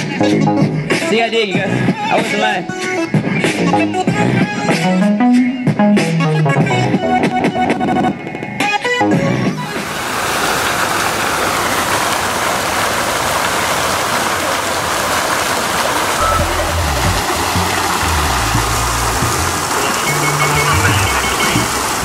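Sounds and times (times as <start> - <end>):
deep bass music: 3.5 - 7.2, 16.2 - 22.0
fountain water splashing: 9.6 - 22.0.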